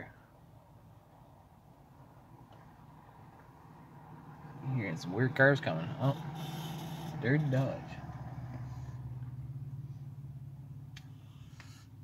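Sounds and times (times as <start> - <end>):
passing car engine drone: 0.7 - 12.0.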